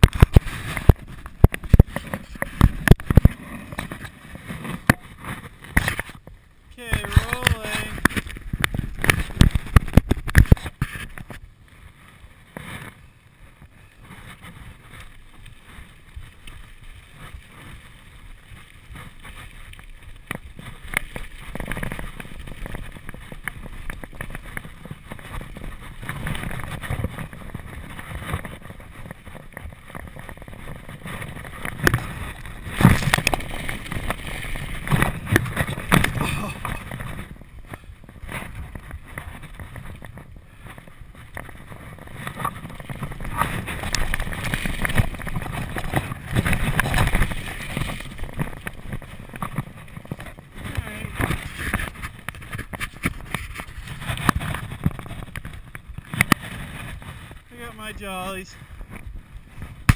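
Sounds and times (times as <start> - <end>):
bike rattling over bumps: 0.0 - 59.9
bike tyres rolling over rock: 0.0 - 59.9.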